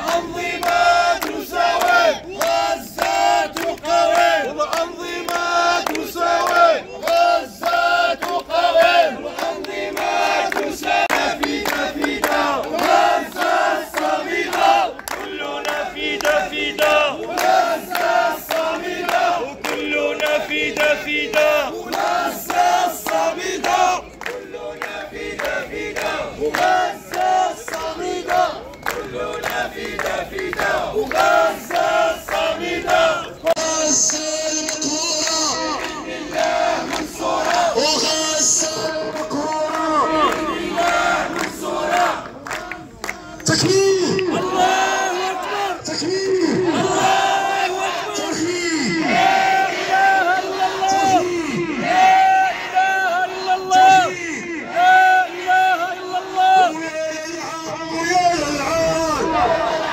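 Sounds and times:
hand claps: 0:00.0 - 0:44.5
men chanting together: 0:00.0 - 0:57.6, 0:58.4 - 0:59.9.

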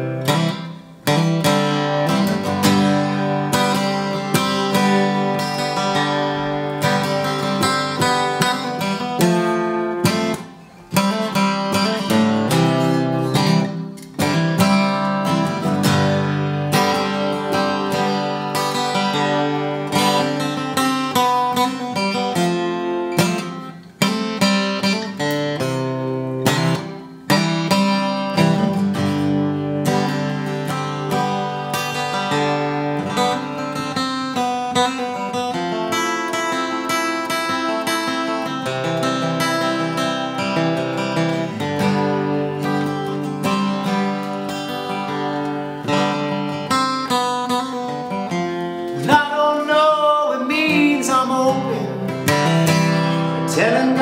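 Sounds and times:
acoustic guitar strumming: 0:00.0 - 0:54.0
man singing: 0:48.9 - 0:54.0.

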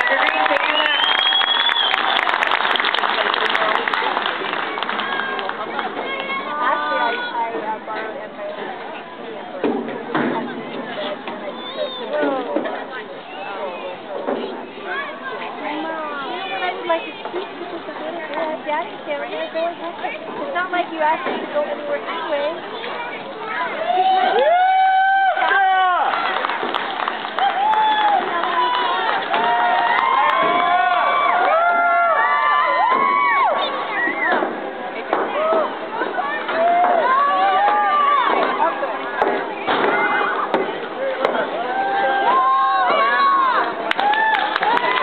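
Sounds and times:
people talking: 0:00.0 - 0:01.5, 0:02.1 - 0:24.5, 0:25.4 - 0:45.0
background chatter: 0:00.0 - 0:45.0.

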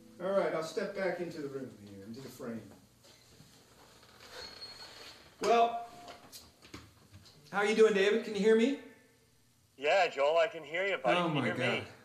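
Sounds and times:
footsteps walking into room: 0:01.6 - 0:07.6.

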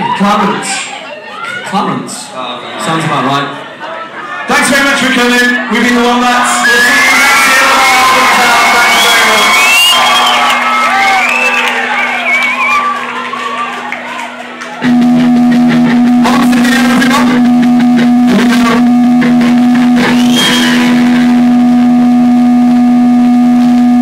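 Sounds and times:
crowd cheering and screaming: 0:06.0 - 0:14.9, 0:20.0 - 0:21.3
rock band playing: 0:14.5 - 0:22.0
held low note: 0:14.8 - 0:24.0.

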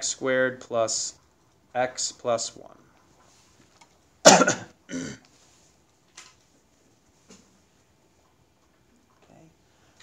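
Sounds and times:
man coughing: 0:04.2 - 0:05.2.

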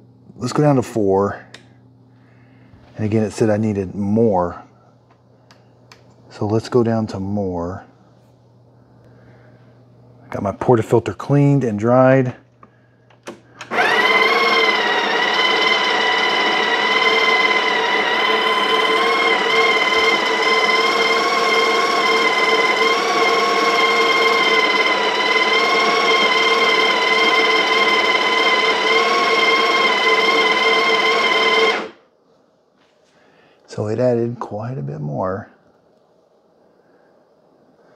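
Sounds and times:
coffee grinder motor whine: 0:13.6 - 0:32.0.

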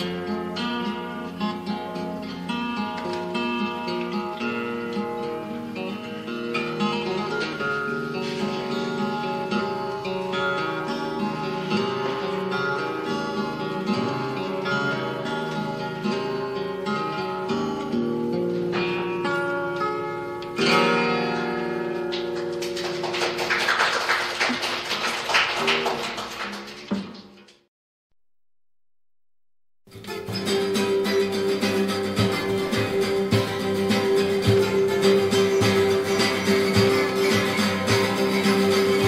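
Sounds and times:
acoustic guitars strumming: 0:00.0 - 0:24.6, 0:29.9 - 0:39.0.

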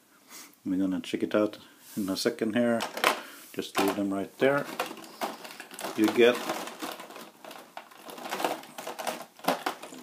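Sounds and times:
plastic packaging crinkling: 0:02.8 - 0:10.0.

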